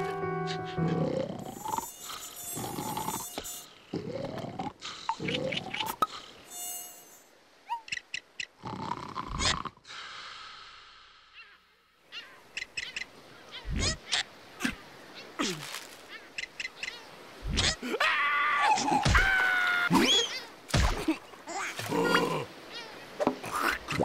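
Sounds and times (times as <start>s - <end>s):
high buzzing: 1.4s - 3.8s, 6.4s - 7.4s.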